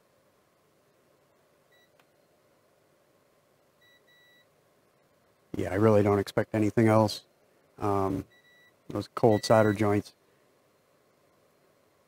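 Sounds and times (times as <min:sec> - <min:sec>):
faint multimeter beeps: 0:01.7 - 0:02.4, 0:03.8 - 0:04.6, 0:07.8 - 0:10.0.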